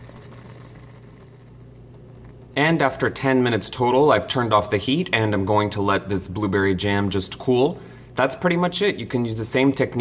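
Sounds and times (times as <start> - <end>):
jam bubbling in pot: 0.0 - 2.6
steady low hum: 0.0 - 10.0.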